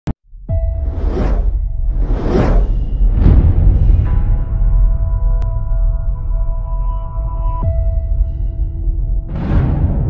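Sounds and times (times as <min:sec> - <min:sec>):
whoosh: 0:00.7 - 0:04.3.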